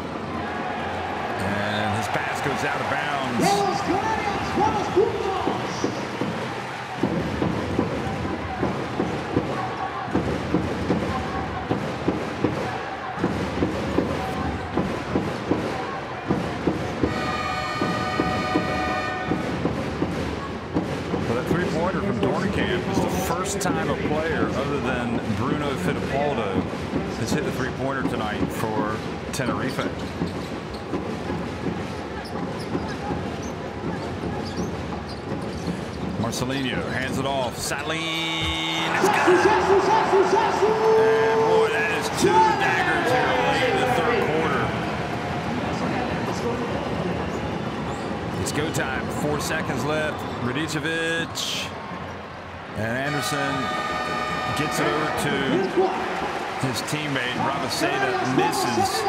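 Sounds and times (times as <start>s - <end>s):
arena crowd noise: 0.0s - 59.0s
horn-like tone: 17.1s - 19.5s, 53.1s - 55.8s.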